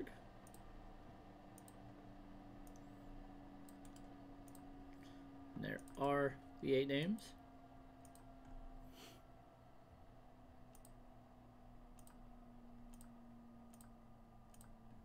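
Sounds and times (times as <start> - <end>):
low electrical hum: 0.0 - 15.0
computer mouse clicks: 0.4 - 0.7, 1.5 - 1.8, 2.6 - 3.0, 3.6 - 5.1, 8.0 - 8.6, 10.7 - 11.0, 11.9 - 12.2, 12.9 - 14.8.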